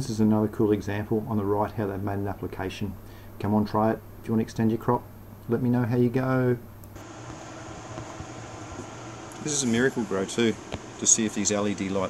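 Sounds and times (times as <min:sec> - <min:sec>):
ventilation fan hum: 0:00.0 - 0:12.0.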